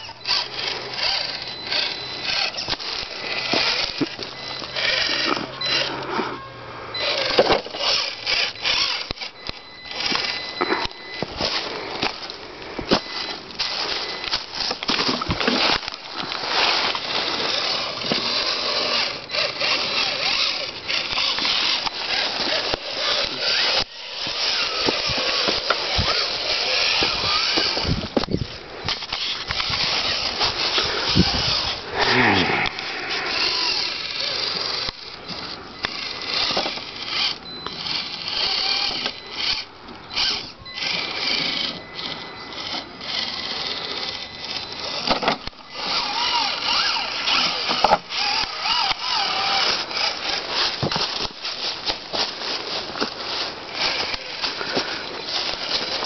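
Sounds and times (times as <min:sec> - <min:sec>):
dry leaves rustling: 0:00.0 - 0:05.3, 0:09.9 - 0:39.5, 0:45.7 - 0:56.0
toy car motor whining: 0:00.0 - 0:56.0.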